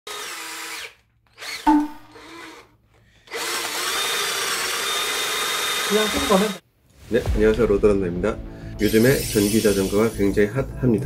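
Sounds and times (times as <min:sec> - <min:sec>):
cordless drill running: 0:00.1 - 0:06.6.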